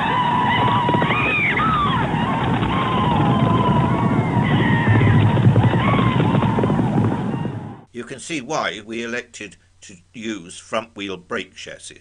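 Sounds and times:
horses galloping: 0:00.0 - 0:07.9
wavering high cries: 0:00.0 - 0:07.9.

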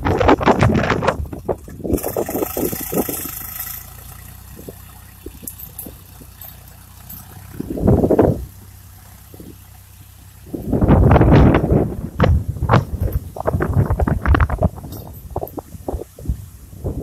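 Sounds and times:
tractor diesel engine drone: 0:00.0 - 0:17.0
wind buffeting microphone: 0:00.0 - 0:17.0.

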